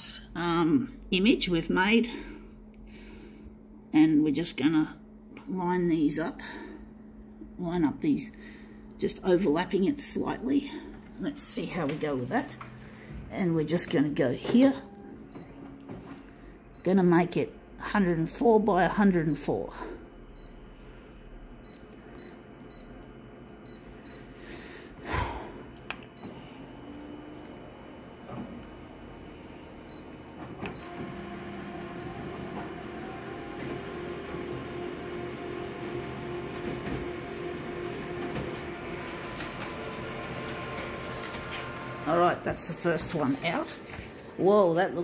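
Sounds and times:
copier humming: 0.0s - 45.0s
copier mechanical whir: 5.1s - 45.0s.

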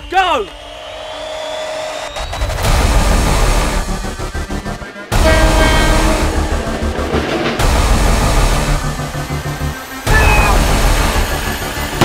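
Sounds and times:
deep boom hit: 5.1s - 9.3s
whoosh: 5.1s - 9.7s.

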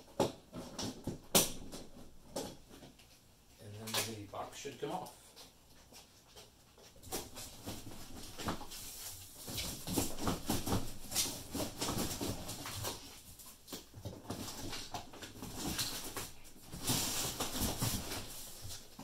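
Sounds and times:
cardboard scraping and rustling: 7.0s - 19.0s.

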